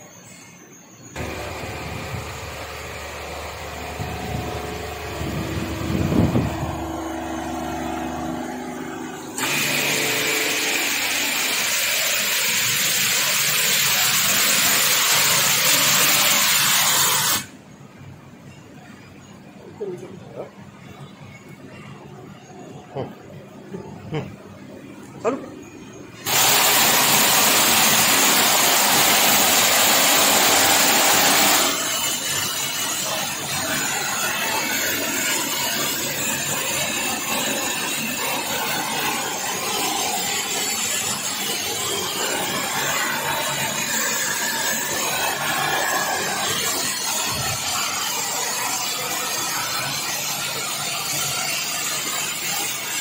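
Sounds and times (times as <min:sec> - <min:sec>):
pressure washer water jet hissing: 0:01.2 - 0:17.5, 0:26.2 - 0:53.0.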